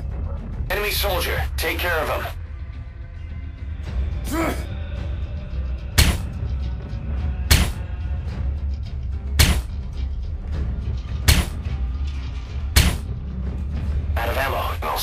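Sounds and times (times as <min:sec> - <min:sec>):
low droning music: 0:00.0 - 0:15.0
gunshot sound effects: 0:06.0 - 0:06.3, 0:07.5 - 0:07.8, 0:09.4 - 0:09.7, 0:11.3 - 0:11.6, 0:12.8 - 0:13.1.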